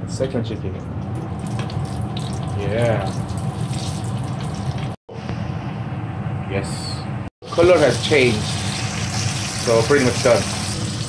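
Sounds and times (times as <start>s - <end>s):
chicken deep-frying in oil: 0.8s - 5.0s, 7.4s - 11.0s.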